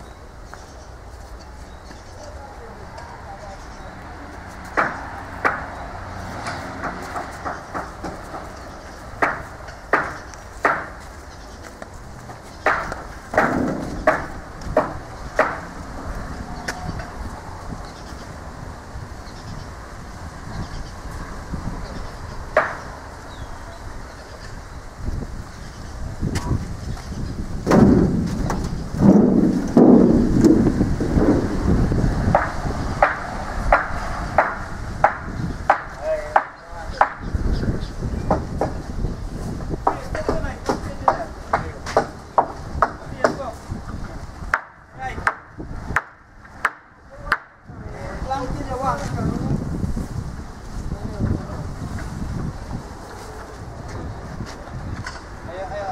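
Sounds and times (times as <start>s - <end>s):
sharp knocks on wood: 4.7s - 5.7s, 6.4s - 8.6s, 9.2s - 11.0s, 12.6s - 15.7s, 22.6s - 22.8s, 27.6s - 30.0s, 32.3s - 37.3s, 38.3s - 38.8s, 39.8s - 43.5s, 44.5s - 47.5s.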